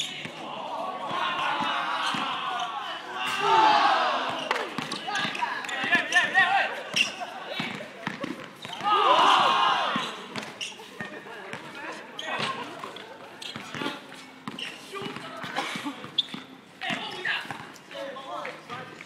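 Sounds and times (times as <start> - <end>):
players calling out: 0.0 - 18.2.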